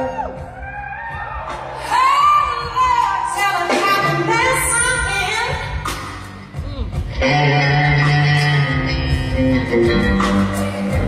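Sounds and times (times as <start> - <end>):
live blues band playing: 0.0 - 11.0.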